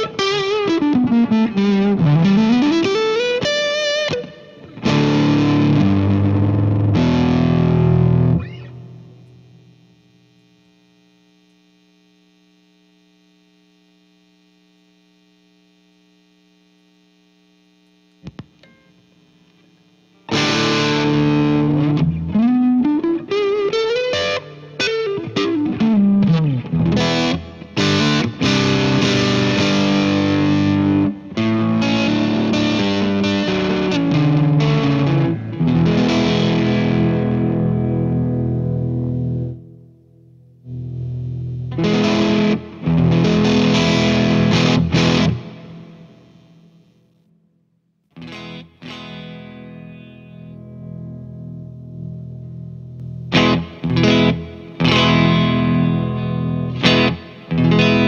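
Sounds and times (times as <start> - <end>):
electric guitar playing: 0.0 - 10.0, 20.2 - 46.9, 48.1 - 58.0.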